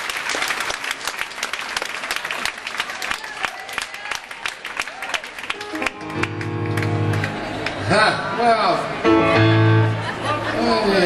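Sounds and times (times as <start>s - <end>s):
piano chord: 5.6s - 7.7s, 9.0s - 10.2s.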